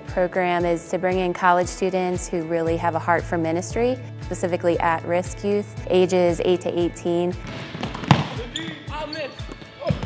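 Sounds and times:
basketball bouncing on hardwood: 7.4s - 8.5s, 9.4s - 10.0s.

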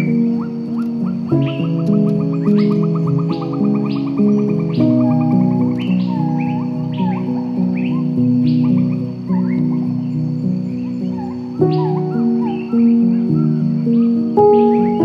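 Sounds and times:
birds chirping: 0.0s - 15.0s
slow soft piano music: 0.0s - 15.0s.

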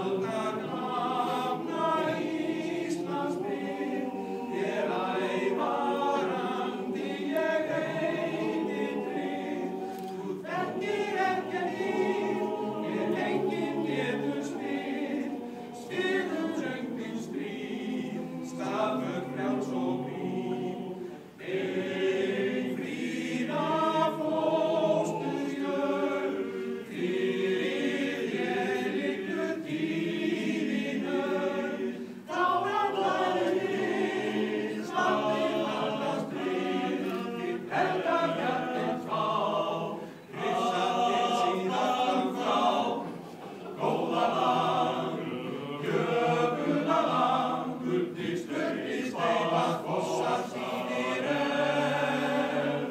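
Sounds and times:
male choir singing a cappella: 0.0s - 52.9s.

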